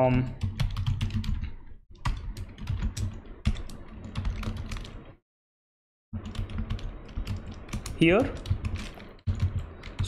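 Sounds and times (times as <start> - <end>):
typing on keyboard: 0.4 - 5.0, 6.2 - 10.0.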